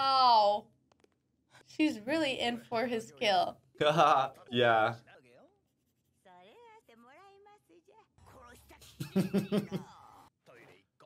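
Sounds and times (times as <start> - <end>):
faint cartoon dialogue: 1.8 - 5.7.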